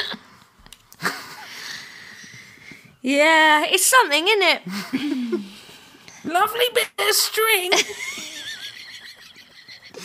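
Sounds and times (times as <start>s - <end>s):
high wavering laugh: 7.8s - 10.0s.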